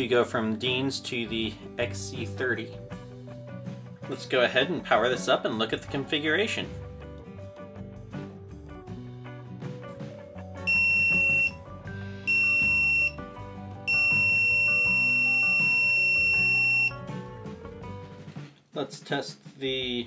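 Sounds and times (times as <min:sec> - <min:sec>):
background music: 0:00.0 - 0:20.0
high-pitched electronic beeps: 0:10.7 - 0:11.6, 0:12.3 - 0:13.2, 0:13.9 - 0:16.9.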